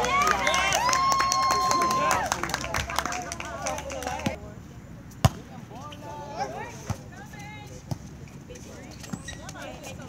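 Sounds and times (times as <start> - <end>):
players shouting: 0.0 - 4.4.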